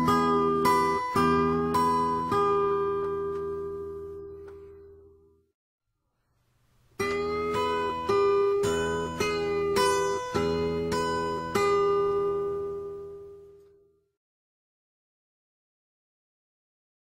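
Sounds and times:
fingerpicked acoustic guitar blues: 0:00.0 - 0:05.1, 0:07.0 - 0:13.6.

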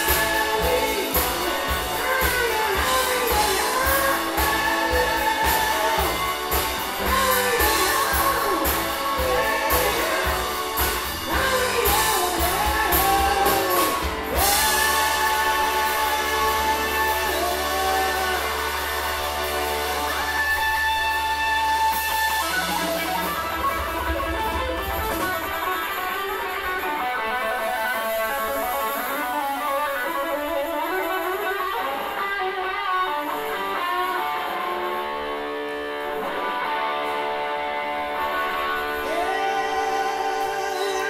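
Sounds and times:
electric guitar run: 0:00.0 - 0:41.0
soul band playing: 0:00.0 - 0:41.0.

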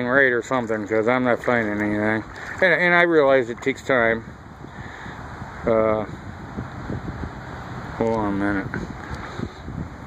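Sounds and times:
wind rumbling on microphone: 0:00.2 - 0:10.0.

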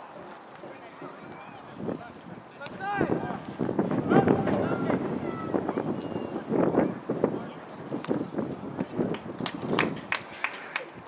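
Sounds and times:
voices calling out: 0:00.0 - 0:09.0.

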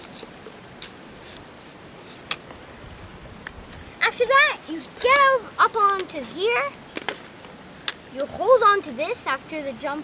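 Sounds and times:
outdoor background hiss: 0:00.0 - 0:10.0.

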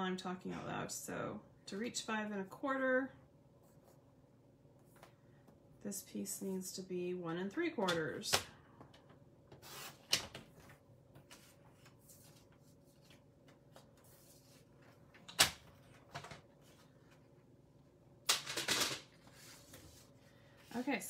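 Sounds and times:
paper rustling: 0:09.6 - 0:17.3.

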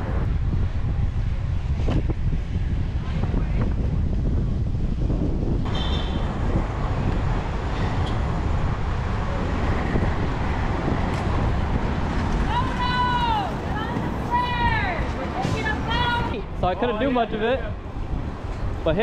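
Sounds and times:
skate wheels rolling on pavement: 0:00.0 - 0:19.0
wind buffeting microphone: 0:00.0 - 0:19.0.

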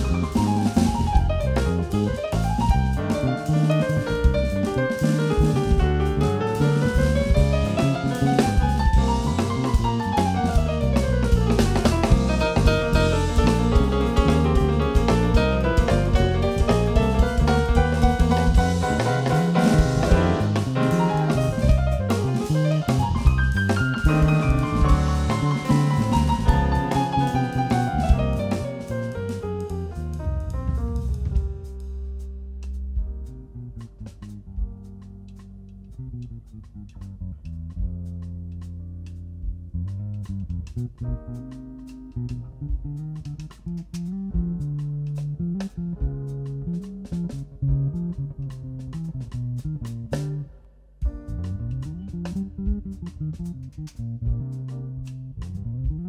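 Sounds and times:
drum kit with cymbal and snare: 0:00.0 - 0:36.0, 0:36.6 - 0:56.0
electric bass: 0:00.0 - 0:56.0
stage keyboard: 0:00.0 - 0:56.0.

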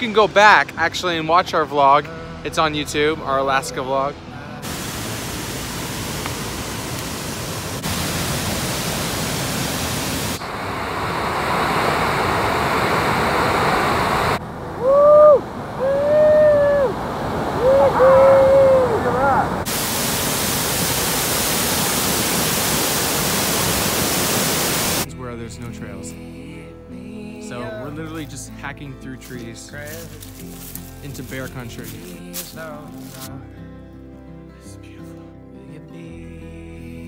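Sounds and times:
waterfall crashing: 0:04.6 - 0:14.4, 0:18.0 - 0:25.1
man shouting: 0:17.6 - 0:19.6.

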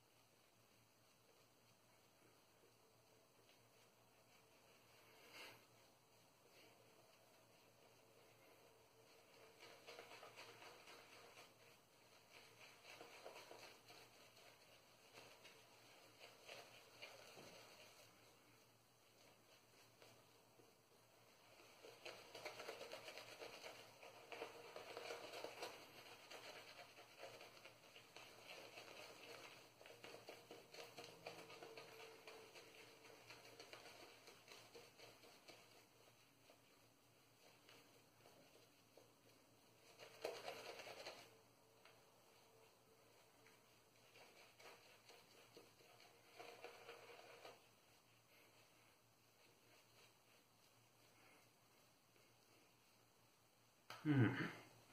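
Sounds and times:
shaving brush lathering skin: 0:03.2 - 0:18.7.

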